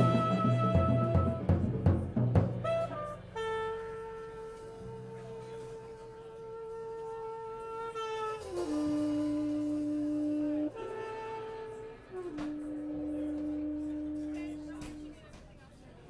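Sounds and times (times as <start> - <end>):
saxophone long notes: 0.0 - 1.6, 2.6 - 15.3.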